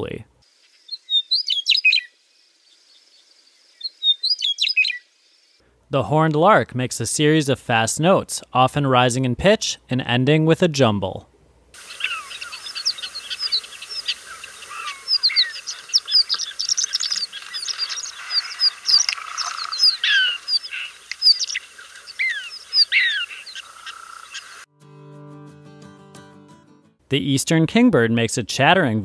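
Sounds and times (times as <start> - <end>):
lark singing: 0.9 - 2.1, 3.8 - 5.1, 11.8 - 24.6.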